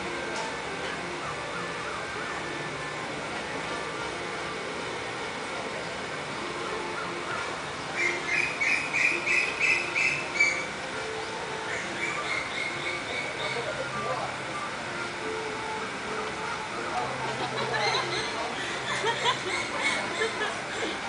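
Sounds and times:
steady low background noise: 0.0 - 21.0.

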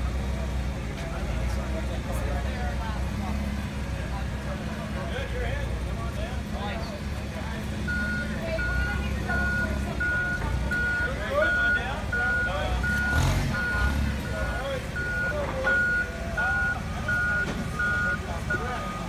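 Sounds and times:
forklift engine running: 0.0 - 19.0
back-up alarm beeping: 7.9 - 19.0.

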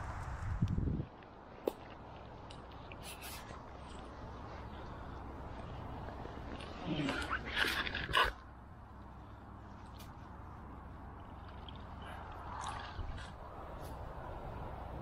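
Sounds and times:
reeds and clothing rustling: 0.0 - 15.0.

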